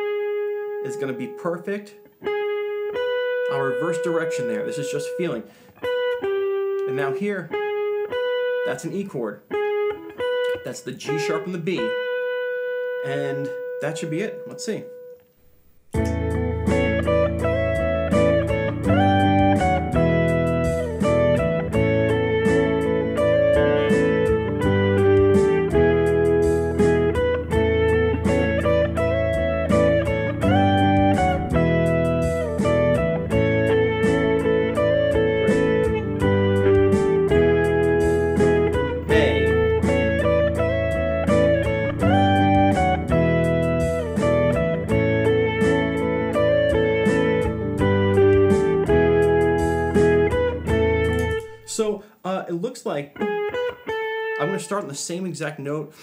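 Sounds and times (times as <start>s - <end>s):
electric guitar melody: 0.0s - 51.8s, 53.1s - 55.3s
looped backing track: 0.0s - 55.0s.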